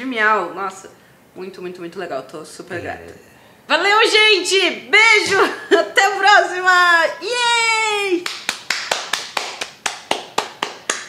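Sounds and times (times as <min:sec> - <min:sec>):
hands slapping rhythmically: 0:08.2 - 0:11.0.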